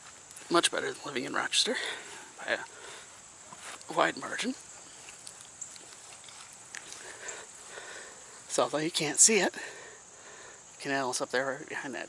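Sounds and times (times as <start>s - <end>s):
faint steady high hiss: 0.0s - 12.0s.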